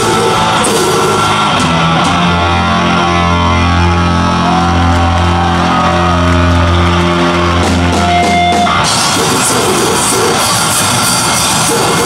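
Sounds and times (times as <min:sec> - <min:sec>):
distorted electric guitar chord ringing: 0:00.0 - 0:12.0.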